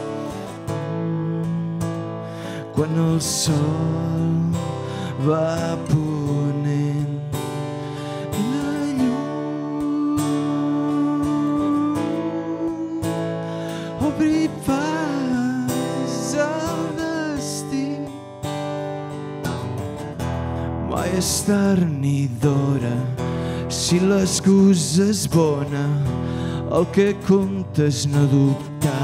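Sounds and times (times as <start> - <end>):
man singing: 0.0 - 18.2, 20.8 - 29.0
strummed acoustic guitar: 0.0 - 29.0.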